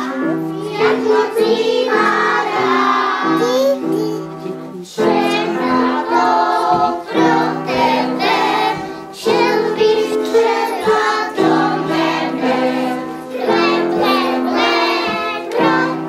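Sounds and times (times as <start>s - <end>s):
children singing: 0.0s - 16.0s.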